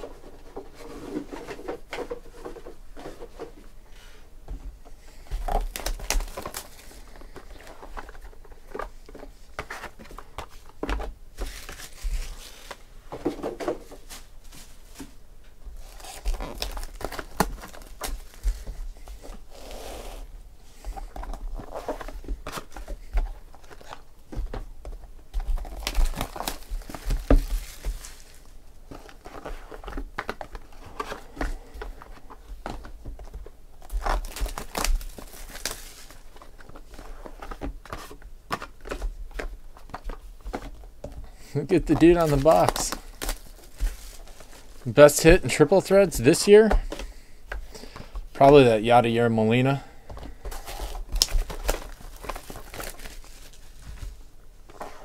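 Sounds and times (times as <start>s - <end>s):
plastic wrap crinkling and tearing: 5.4s - 8.6s, 11.4s - 12.8s, 15.8s - 19.8s, 25.4s - 31.4s, 33.2s - 39.0s, 41.6s - 46.8s, 50.5s - 54.2s.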